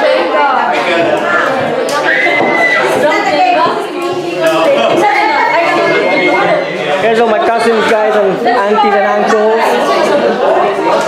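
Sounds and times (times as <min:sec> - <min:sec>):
group chatter: 0:00.0 - 0:11.0.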